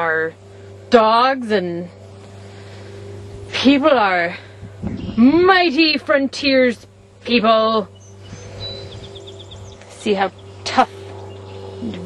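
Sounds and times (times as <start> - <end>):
steady low hum: 0.0 - 12.0
songbird singing: 4.6 - 12.0.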